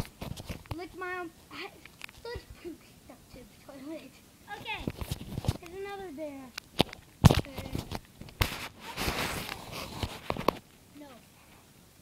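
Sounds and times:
short rustle: 0:07.2 - 0:11.7.

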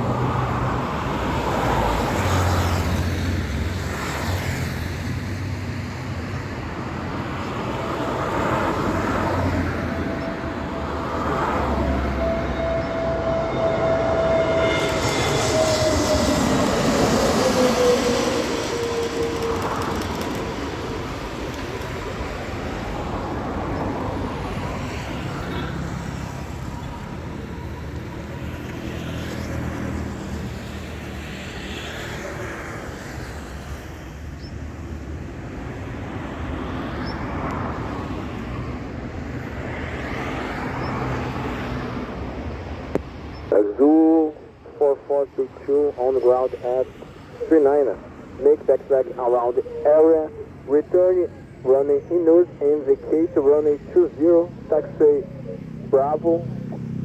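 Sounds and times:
distant jet rumble: 0:00.0 - 0:57.0
jet engines passing overhead: 0:00.0 - 0:57.0.

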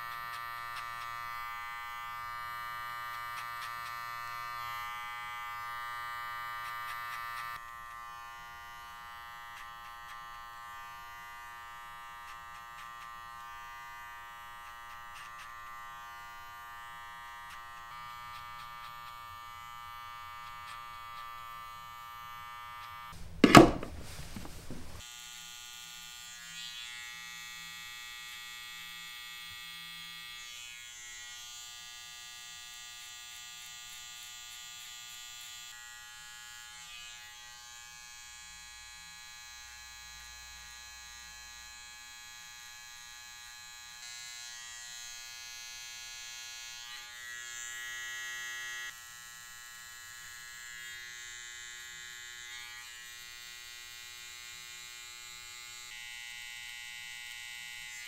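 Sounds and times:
electric hair trimmer buzzing: 0:00.0 - 0:23.9, 0:24.7 - 0:58.0.

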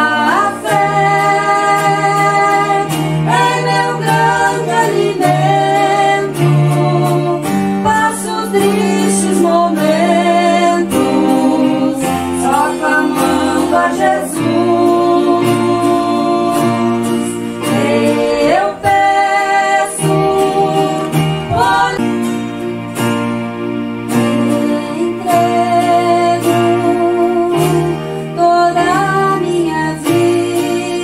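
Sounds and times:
woman and man singing: 0:00.0 - 0:22.1, 0:24.2 - 0:31.0
instrumental accompaniment: 0:00.0 - 0:31.0.

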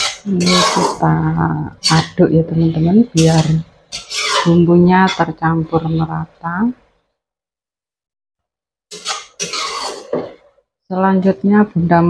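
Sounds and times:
metal spatula scraping a wok: 0:00.0 - 0:01.2, 0:01.8 - 0:06.2, 0:08.9 - 0:10.5.

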